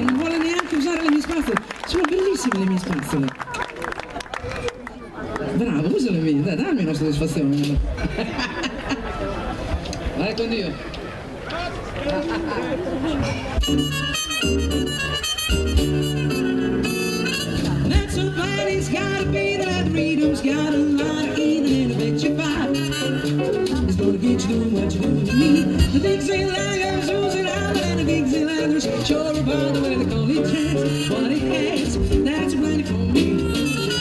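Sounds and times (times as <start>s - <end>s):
drums: 6.6s - 9.0s, 13.1s - 34.0s
electric keyboard: 12.2s - 34.0s
harmonica: 13.6s - 17.9s, 25.2s - 26.3s, 33.0s - 34.0s
woman singing into a microphone: 17.8s - 33.6s.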